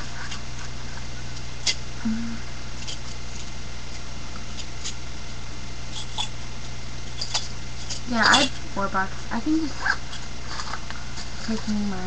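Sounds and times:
microphone hiss and hum: 0.0s - 12.0s.

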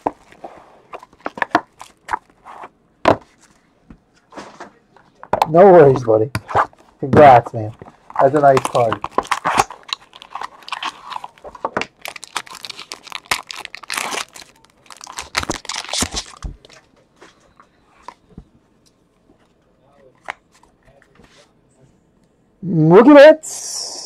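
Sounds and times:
cards clicking and rustling: 6.4s - 16.9s
wrapper crinkling and tearing: 7.7s - 16.8s.

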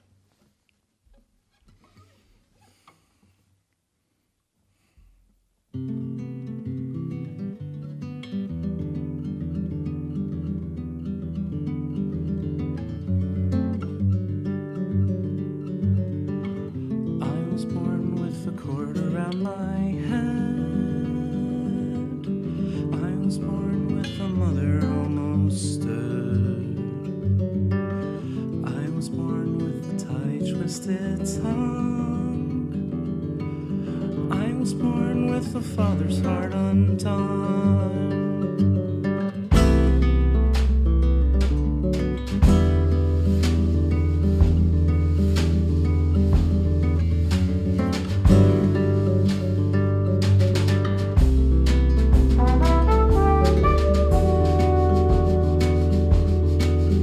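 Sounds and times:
classical guitar picking: 5.7s - 57.0s.

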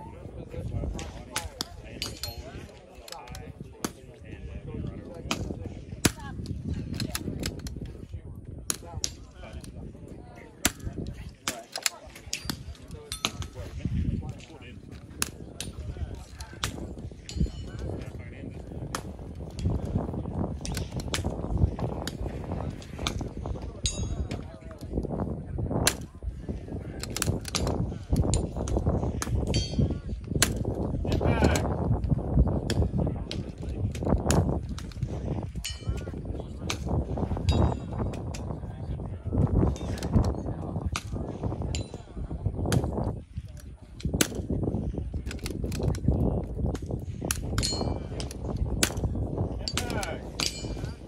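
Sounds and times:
wind rumble on microphone: 0.0s - 51.0s.

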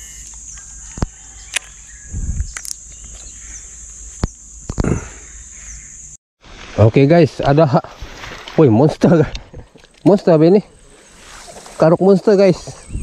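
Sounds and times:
insects droning: 0.0s - 13.0s.

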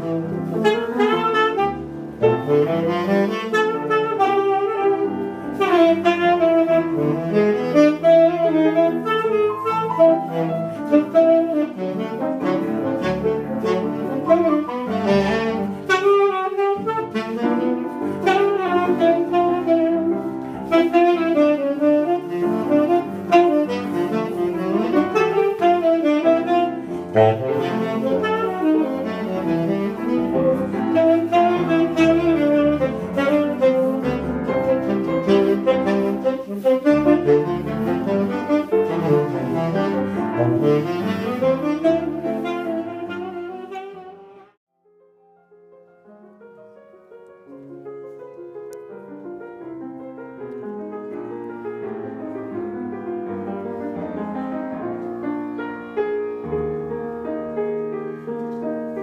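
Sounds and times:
jazz saxophone: 0.0s - 44.6s, 47.8s - 59.0s
grand piano accompaniment: 0.0s - 59.0s.

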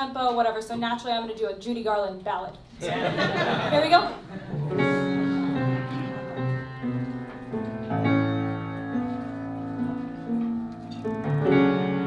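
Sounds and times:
piano playing slow ballad chords: 4.5s - 12.0s.

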